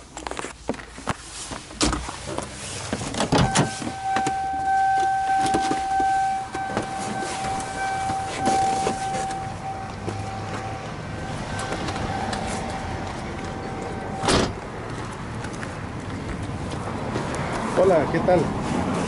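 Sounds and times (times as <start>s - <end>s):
person climbing out of car: 0.1s - 10.8s, 11.4s - 17.3s
car door clunks: 3.0s - 10.7s, 14.2s - 14.6s
car warning buzzer: 3.3s - 14.6s.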